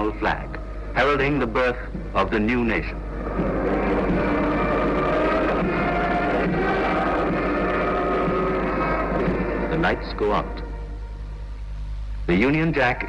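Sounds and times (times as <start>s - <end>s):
band playing held chords: 0.0s - 13.0s
constant low hum: 0.0s - 13.0s.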